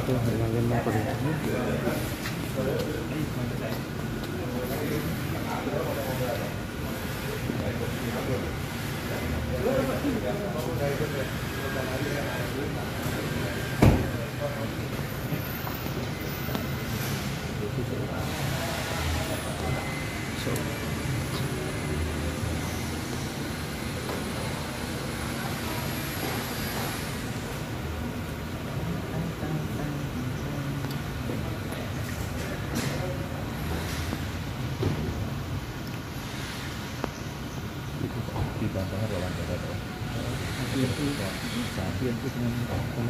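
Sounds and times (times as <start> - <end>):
people talking: 0.0 - 34.2, 38.0 - 43.0
vehicle engines idling: 0.0 - 43.0
faint high whine: 6.8 - 28.3.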